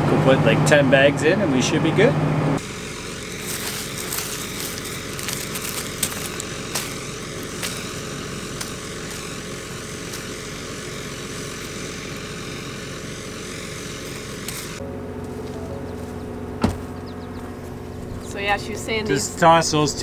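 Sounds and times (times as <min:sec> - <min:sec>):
tractor engine and fan running: 0:00.0 - 0:20.0.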